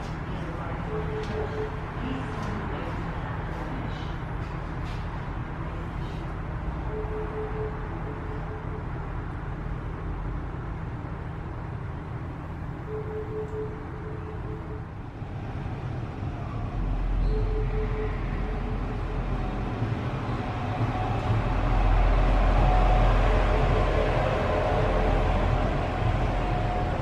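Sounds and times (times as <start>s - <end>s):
diesel railcar rumbling: 0.0s - 27.0s
steady low rumble: 0.0s - 27.0s.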